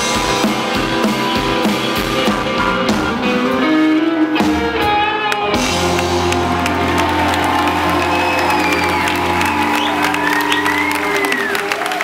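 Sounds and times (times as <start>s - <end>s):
audience clapping and cheering: 5.4s - 12.0s.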